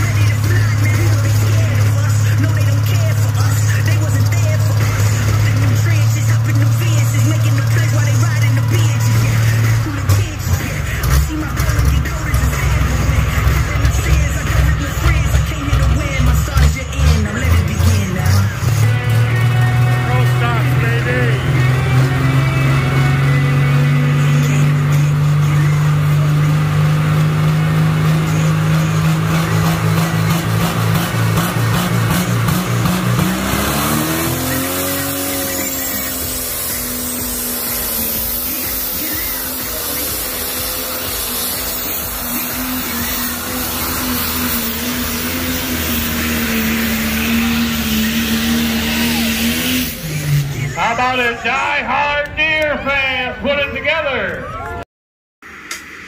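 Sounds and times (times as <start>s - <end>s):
tractor engine droning and revving: 0.0s - 54.8s.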